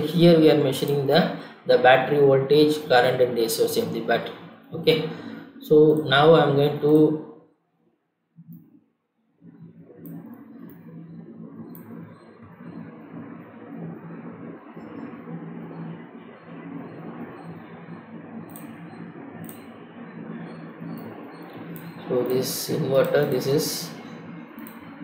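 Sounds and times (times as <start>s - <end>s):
low hum and hiss: 0.0s - 7.2s, 9.5s - 25.0s.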